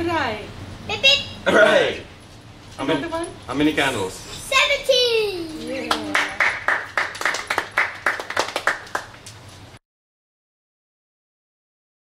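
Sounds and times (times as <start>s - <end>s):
people clapping: 5.8s - 9.4s.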